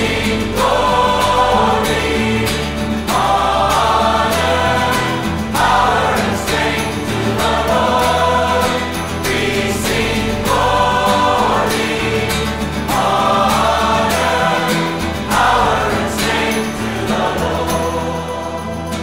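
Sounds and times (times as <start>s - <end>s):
choir singing worship song: 0.0s - 19.0s
instrumental backing with percussion: 0.0s - 19.0s.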